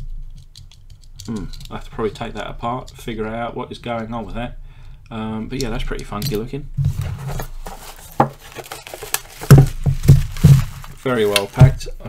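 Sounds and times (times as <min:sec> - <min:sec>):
plastic wrapping crinkling: 0:07.2 - 0:12.0.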